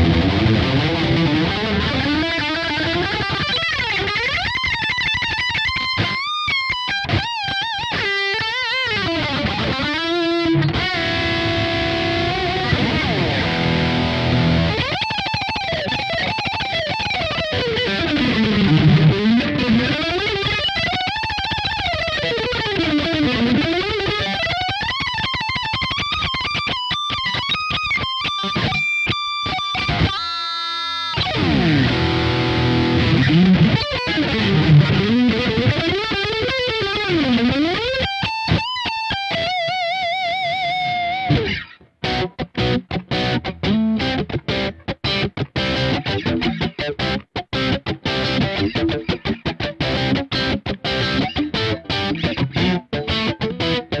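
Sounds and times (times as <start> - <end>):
distorted electric guitar lead: 0.0 - 54.0.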